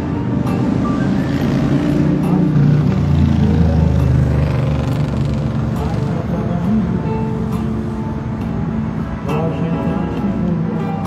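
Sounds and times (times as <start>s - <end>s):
song with guitar over loudspeaker: 0.0s - 11.0s.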